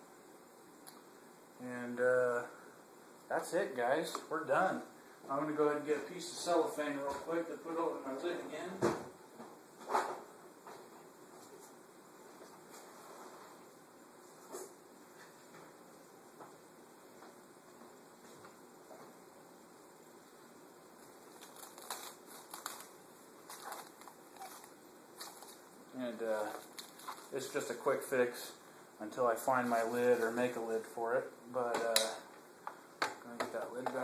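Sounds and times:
cellophane rustling: 21.0s - 28.0s.

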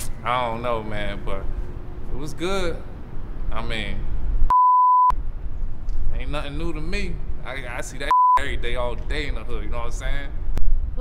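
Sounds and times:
low outdoor background noise: 0.0s - 4.5s, 5.1s - 11.0s
censor bleep: 4.5s - 5.2s, 8.1s - 8.4s.

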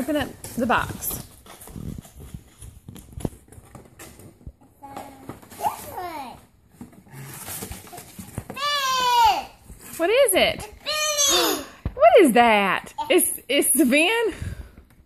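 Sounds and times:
paper and cardboard crinkling: 0.0s - 11.2s
child squealing: 10.8s - 11.8s.

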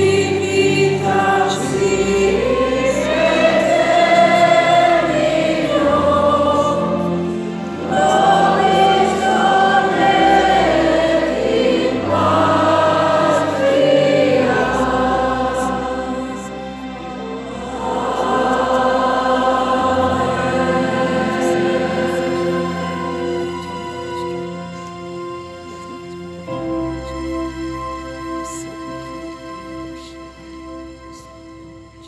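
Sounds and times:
choir singing a hymn: 0.0s - 31.3s
low sustained accompaniment: 0.0s - 32.0s.

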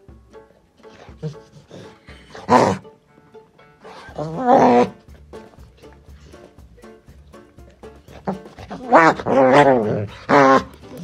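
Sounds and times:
background music: 0.0s - 11.0s
dog play growl: 1.1s - 2.8s, 4.0s - 5.0s, 8.2s - 11.0s.

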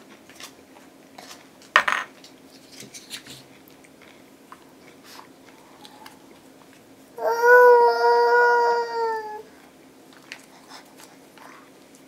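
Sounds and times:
toddler high-pitched vocal sound: 7.2s - 9.5s.

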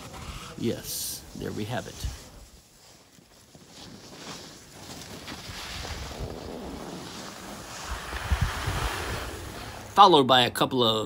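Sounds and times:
skis sliding on snow: 0.0s - 10.0s
wind buffeting microphone: 5.4s - 10.0s.

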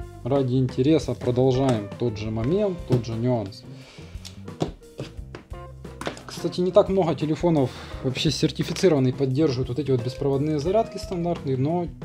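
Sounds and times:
background music with held tones: 0.0s - 12.0s.

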